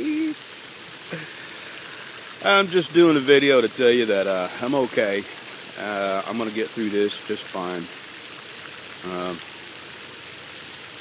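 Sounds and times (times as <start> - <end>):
person saying uh: 0.0 - 0.4, 1.1 - 1.4, 5.8 - 7.9, 9.0 - 9.4
running water hissing: 0.0 - 11.0.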